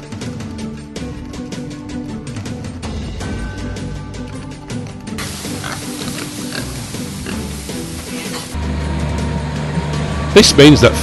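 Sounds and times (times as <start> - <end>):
background music: 0.0 - 11.0
pigs grunting: 5.2 - 8.6.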